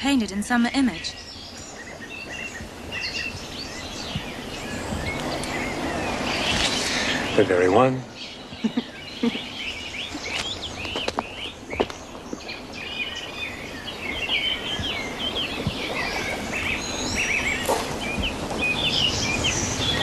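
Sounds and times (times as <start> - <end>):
outdoor background hiss: 0.0 - 20.0
songbirds chirping: 0.0 - 20.0.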